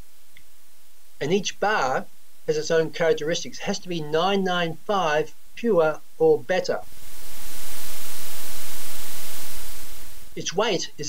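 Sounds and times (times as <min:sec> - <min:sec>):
loud static hiss: 0:00.0 - 0:11.0.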